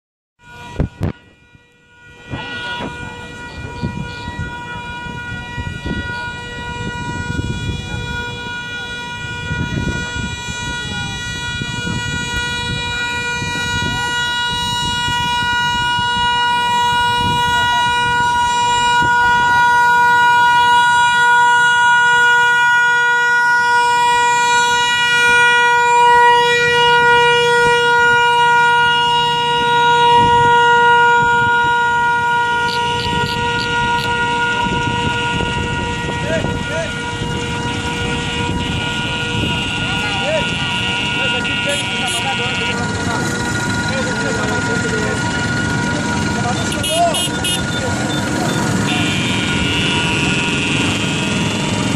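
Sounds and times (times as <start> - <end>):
scooter engines buzzing: 2.0 - 51.9
murmured voices: 38.9 - 49.8.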